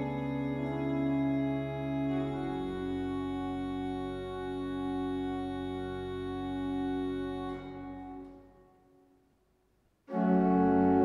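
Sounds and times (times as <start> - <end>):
church pipe organ chords: 0.0 - 8.6, 10.1 - 11.0.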